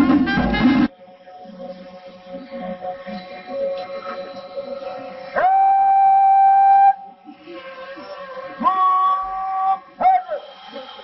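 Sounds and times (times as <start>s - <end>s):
wind instruments held tones: 0.0s - 0.9s.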